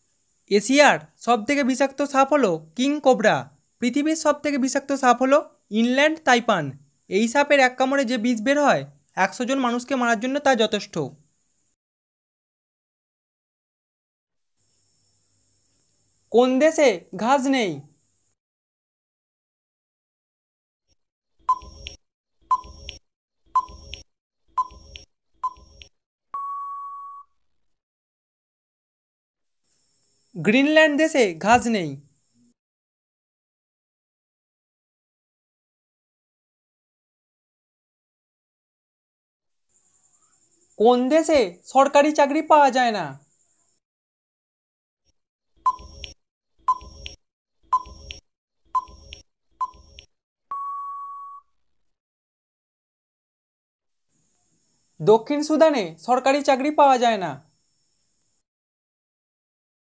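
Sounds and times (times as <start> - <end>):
short timer beeps: 21.5 - 23.0, 23.6 - 27.3, 45.7 - 48.2, 48.8 - 51.5
long steady beep: 26.4 - 27.3, 48.8 - 51.5.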